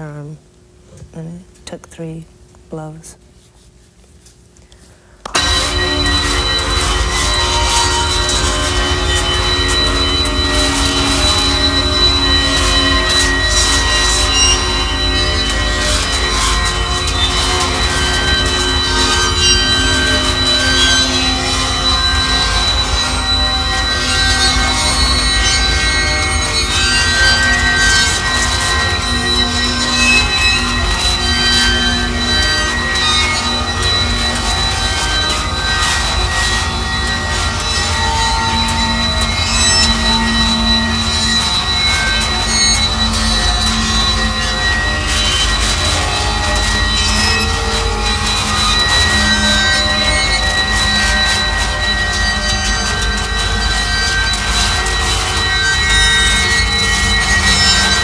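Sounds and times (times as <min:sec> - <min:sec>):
high whistling tones: 0:05.2 - 0:58.0
harsh noise music: 0:05.3 - 0:58.0.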